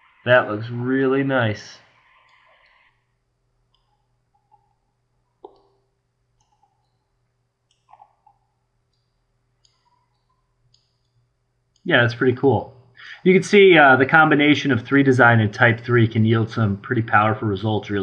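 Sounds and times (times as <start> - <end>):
faint low hum: 0.0 - 18.0
computer mouse clicks: 6.4 - 7.0, 7.7 - 11.2.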